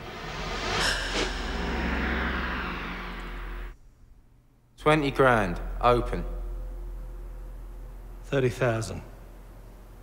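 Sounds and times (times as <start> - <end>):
loud rushing roar: 0.0 - 3.8
sharp hit: 0.0 - 4.2
steady low hum: 0.0 - 10.0.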